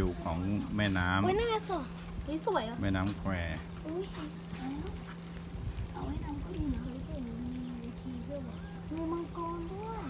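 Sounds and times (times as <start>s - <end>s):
steady low hum and rumble: 0.0s - 10.0s.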